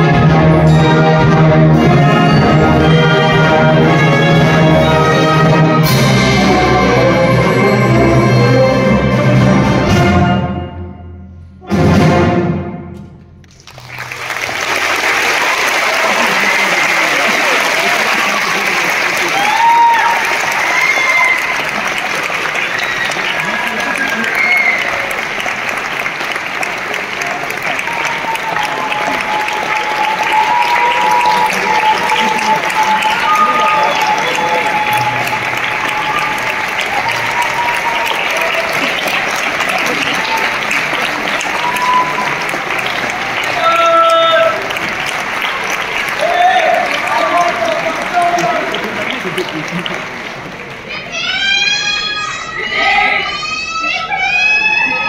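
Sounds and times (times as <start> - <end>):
audience applauding: 13.4 - 52.0
scattered cheers: 14.0 - 55.0.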